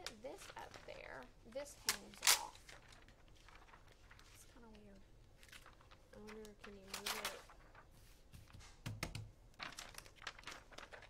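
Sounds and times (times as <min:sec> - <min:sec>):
plastic sheet crinkling: 0:00.0 - 0:08.8, 0:09.5 - 0:11.0.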